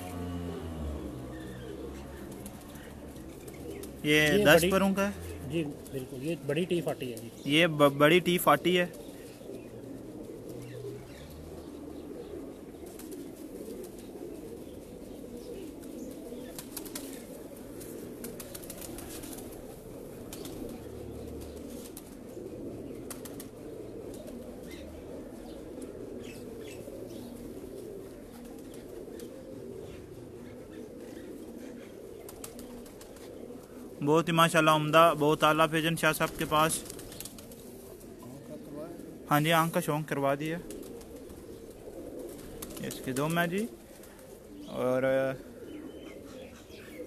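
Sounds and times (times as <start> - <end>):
pigeons cooing: 0.0 - 47.0.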